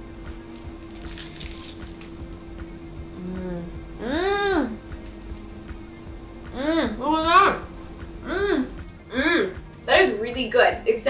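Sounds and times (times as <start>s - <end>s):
soft background music: 0.0s - 11.0s
rice ball bite crackle: 0.3s - 3.3s.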